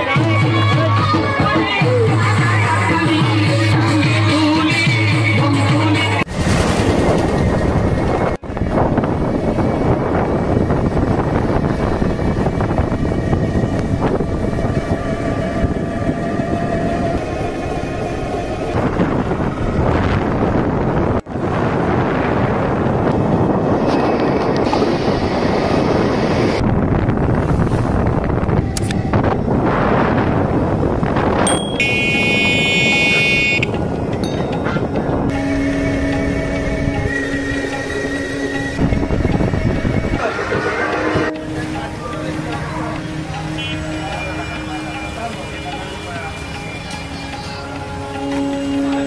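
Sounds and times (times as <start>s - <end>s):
road vehicle running: 6.2s - 49.0s
vehicle horn: 31.5s - 33.8s, 42.9s - 44.7s.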